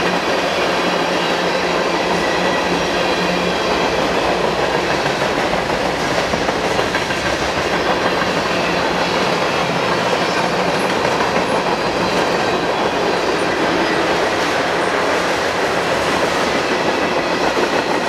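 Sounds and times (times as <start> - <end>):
train wheels rolling on rails: 0.0 - 18.0.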